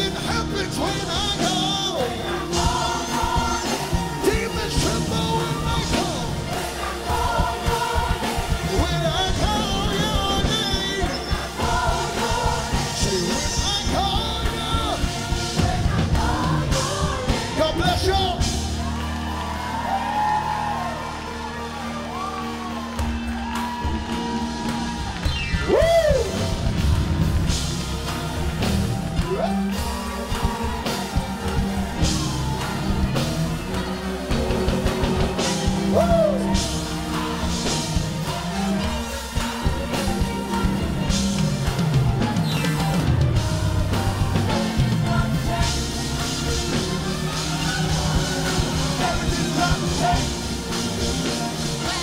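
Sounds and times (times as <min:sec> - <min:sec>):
band playing gospel music: 0:00.0 - 0:52.0
voices singing and shouting: 0:00.0 - 0:52.0.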